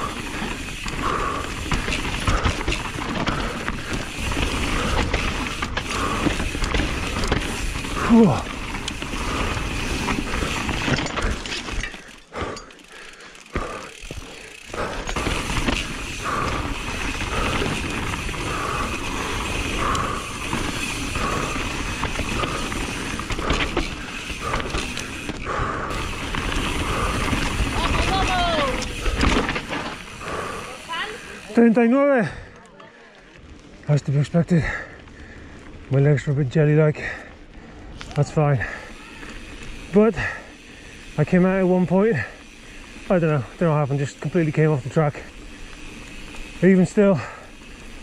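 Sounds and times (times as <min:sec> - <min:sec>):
tyres rumbling over loose dirt: 0:00.0 - 0:32.4, 0:33.4 - 0:48.0
bike chain and frame rattling: 0:00.0 - 0:48.0.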